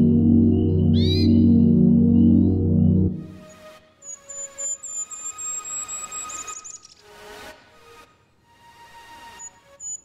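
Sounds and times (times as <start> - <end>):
ambient synth drone: 0.0 - 3.8.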